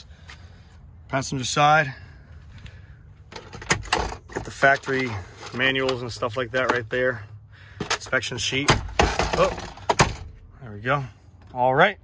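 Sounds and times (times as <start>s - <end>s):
glove box handling noise: 3.2s - 7.1s, 7.7s - 10.6s.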